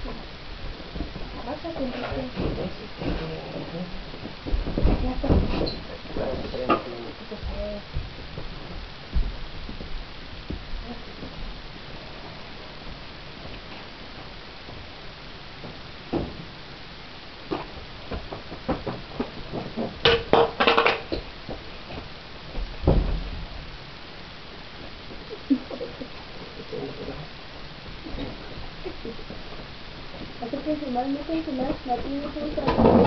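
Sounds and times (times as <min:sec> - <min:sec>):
low thuds: 0:00.0 - 0:15.0, 0:21.2 - 0:23.8
rough noise burst: 0:00.0 - 0:33.0
knocks and bumps: 0:00.9 - 0:11.6, 0:17.5 - 0:23.6.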